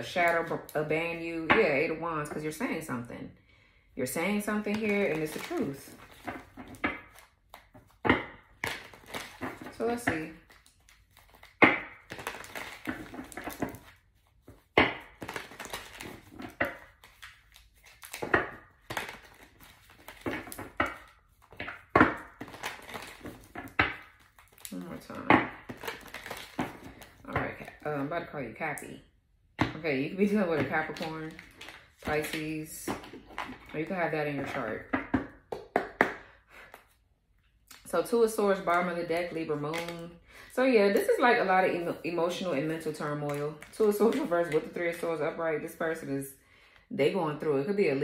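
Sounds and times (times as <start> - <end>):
cards being shuffled: 10.5 - 24.9.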